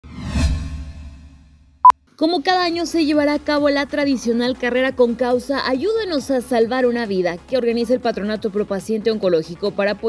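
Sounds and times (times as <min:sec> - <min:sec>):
whoosh: 0:00.0 - 0:01.9.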